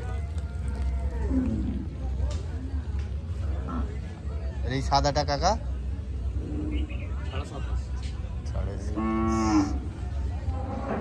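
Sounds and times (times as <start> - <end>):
cow mooing: 8.9 - 9.8.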